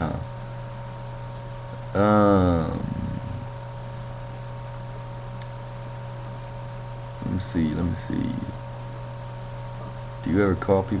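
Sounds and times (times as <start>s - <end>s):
room tone hum and hiss: 0.0s - 11.0s
person saying um: 2.0s - 3.4s.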